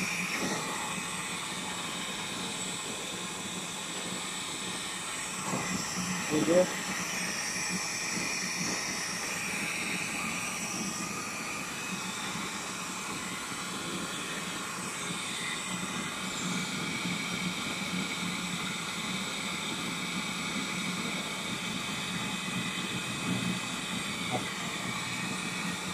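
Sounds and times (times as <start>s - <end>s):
machine hiss: 0.0s - 25.9s
machine hum with whining tones: 0.0s - 25.9s.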